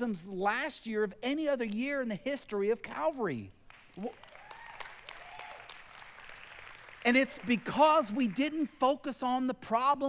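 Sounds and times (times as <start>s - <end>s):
people applauding lightly: 3.7s - 8.8s.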